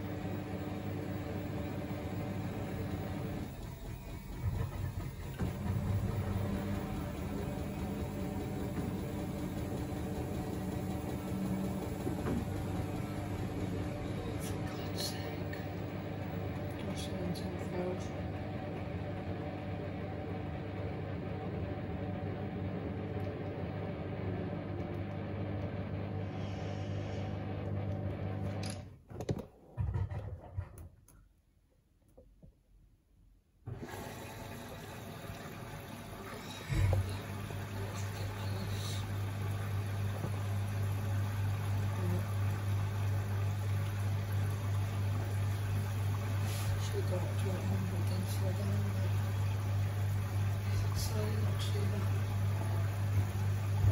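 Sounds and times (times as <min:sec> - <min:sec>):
washing machine humming: 0:00.0 - 0:30.8, 0:33.6 - 0:53.9.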